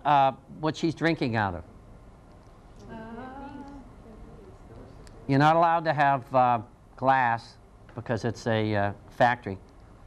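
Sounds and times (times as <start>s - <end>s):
person humming faintly: 2.8s - 5.3s.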